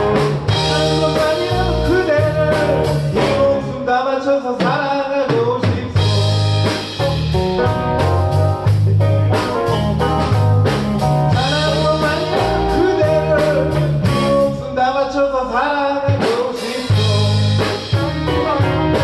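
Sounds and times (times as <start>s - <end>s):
drum kit playing steady beat: 0.0s - 3.7s, 4.6s - 14.6s, 16.1s - 19.0s
electric guitars: 0.0s - 4.0s, 5.7s - 15.0s, 16.4s - 19.0s
bass guitar: 0.0s - 4.1s, 5.5s - 19.0s
person singing: 0.0s - 7.0s, 11.3s - 19.0s.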